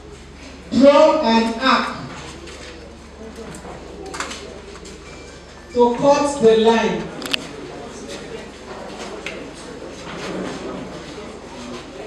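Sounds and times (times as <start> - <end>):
faint background chatter: 0.0 - 12.0
room hum: 0.0 - 12.0.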